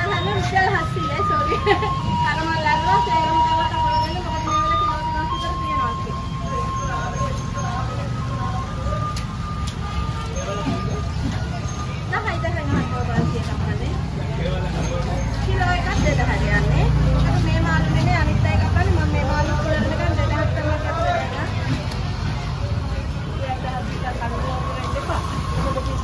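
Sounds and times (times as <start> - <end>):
low engine rumble: 0.0 - 26.0
people talking: 0.0 - 26.0.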